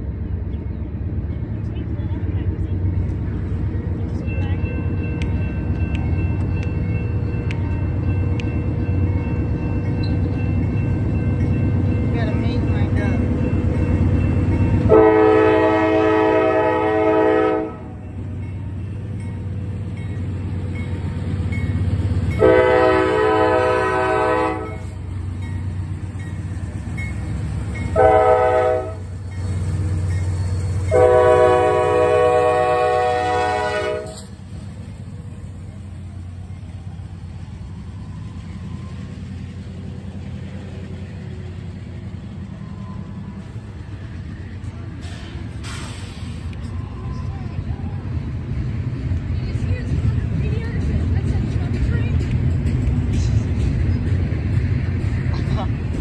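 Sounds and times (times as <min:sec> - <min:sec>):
diesel engines rumbling: 0:00.0 - 0:56.0
train cars rolling past: 0:00.0 - 0:56.0
locomotive air horn: 0:14.9 - 0:18.0, 0:22.4 - 0:25.0, 0:27.9 - 0:29.1, 0:30.9 - 0:34.3.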